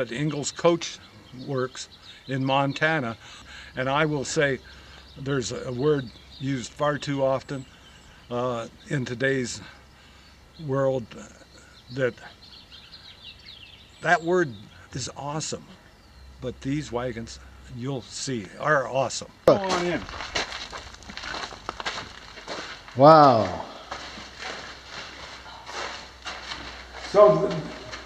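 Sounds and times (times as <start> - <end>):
faint outdoor background noise: 0.0 - 28.0
small birds chirping: 0.0 - 28.0
person speaking: 19.5 - 20.1, 22.9 - 24.0, 26.9 - 28.0
footsteps on hard floor: 19.7 - 28.0.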